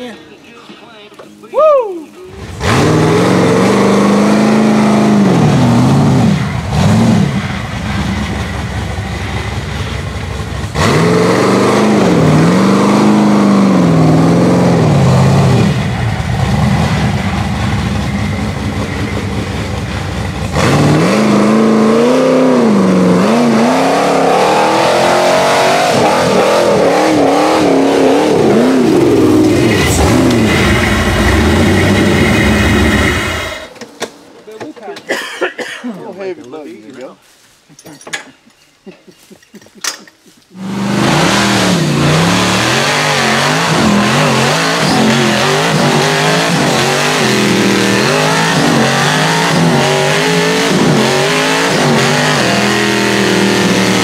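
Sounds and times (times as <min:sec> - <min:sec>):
buggy engine revving hard: 0:02.4 - 0:33.7, 0:40.5 - 0:54.0.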